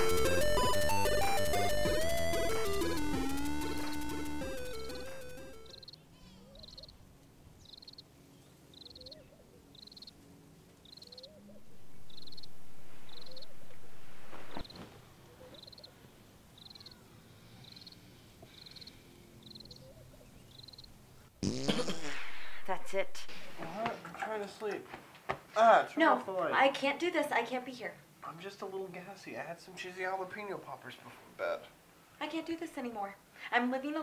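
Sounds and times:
crickets chirping: 2.1 - 6.0, 7.6 - 8.1, 8.7 - 10.2, 10.8 - 14.8, 15.6 - 15.9, 16.6 - 19.8, 20.5 - 21.0
loud fart: 21.4 - 22.7.

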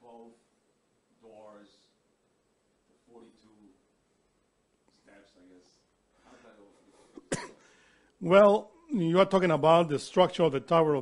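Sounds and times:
person coughing: 7.1 - 7.7.

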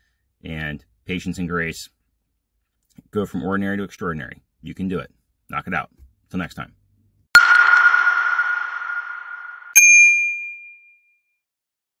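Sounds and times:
bell-like ding: 7.4 - 11.3.

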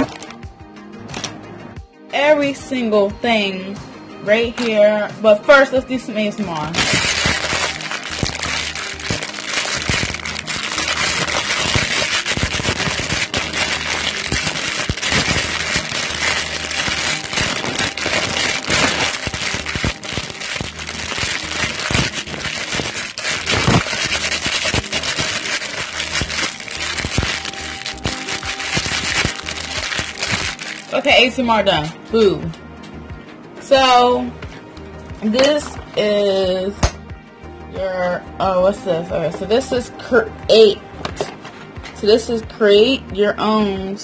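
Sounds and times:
plastic packaging crackling: 0.0 - 0.4, 6.6 - 31.2
background music: 0.0 - 44.0.

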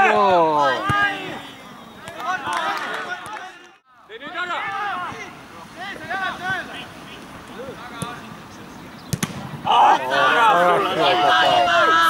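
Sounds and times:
loud shouting: 0.0 - 7.0, 9.6 - 12.0
men talking: 0.0 - 12.0
football kicked hard: 9.1 - 9.6.

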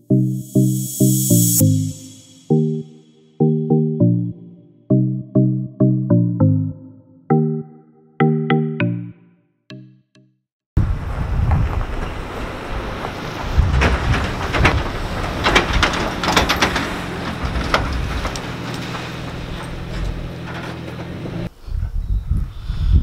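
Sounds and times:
pickup truck engine driving past: 11.0 - 21.5
trailer metal frame clanking: 13.4 - 21.5.

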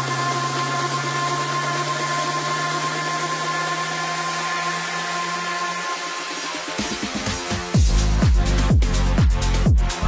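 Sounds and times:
electronic dance music breakdown: 0.0 - 10.0.

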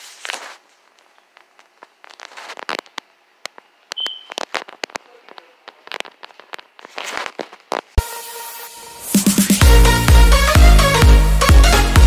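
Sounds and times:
clicks knocks and crackles: 0.9 - 8.0
short high beep: 4.0 - 4.4.

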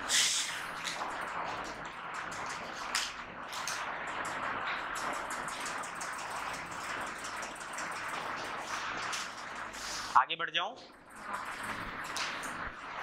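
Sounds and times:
steady room hiss: 0.0 - 13.0
faint clicks and rustles: 0.1 - 13.0.

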